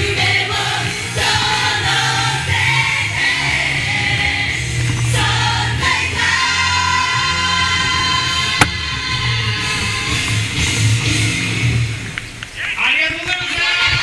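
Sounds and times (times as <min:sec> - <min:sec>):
pop song over pa system: 0:00.0 - 0:14.0.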